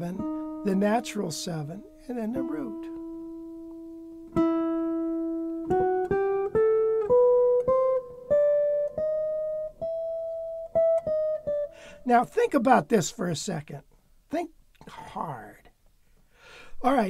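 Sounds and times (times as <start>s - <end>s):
jazz guitar playing scale: 0.0s - 13.6s.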